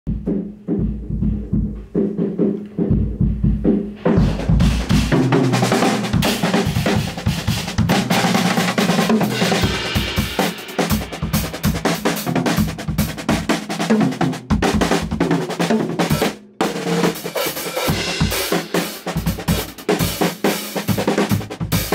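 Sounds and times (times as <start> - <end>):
kick drum hits: 0.1 - 5.2
snare drum rolls and cymbals: 0.1 - 21.9.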